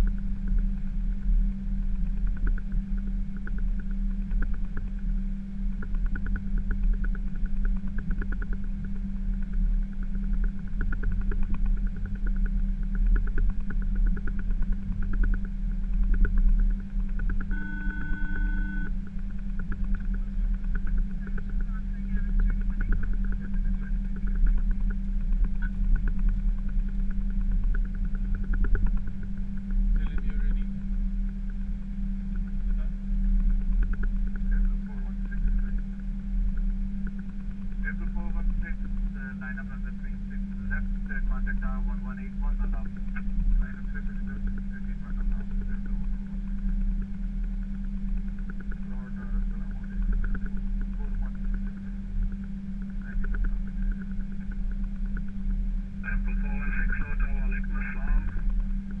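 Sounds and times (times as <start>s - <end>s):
aircraft cockpit hum and rumble: 0.0s - 59.0s
short electronic tone: 17.5s - 18.9s.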